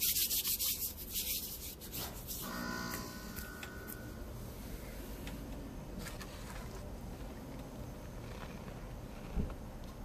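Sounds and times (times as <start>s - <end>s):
fingers rubbing gritty powder: 0.0s - 2.5s
faint multi-tone hum: 0.0s - 10.0s.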